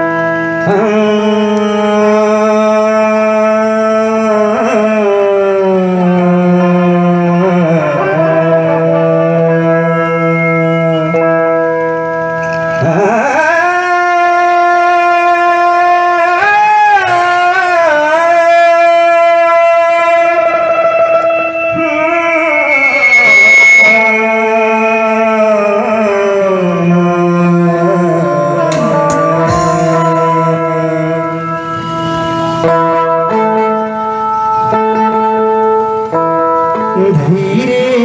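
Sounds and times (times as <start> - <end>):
man singing a long note: 0.0 - 12.1, 12.7 - 38.0.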